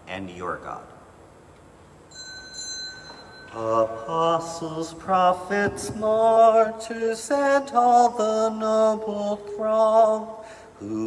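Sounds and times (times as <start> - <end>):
bell ringing: 2.1 - 4.4.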